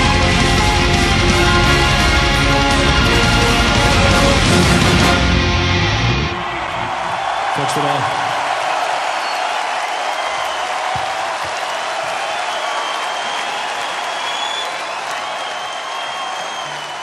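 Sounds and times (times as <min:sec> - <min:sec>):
crowd applauding and cheering: 0:00.0 - 0:17.0.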